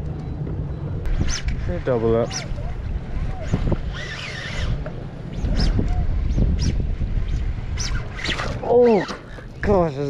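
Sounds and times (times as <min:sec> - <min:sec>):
wind buffeting microphone: 0:00.0 - 0:10.0
voices: 0:01.6 - 0:06.4, 0:08.3 - 0:10.0.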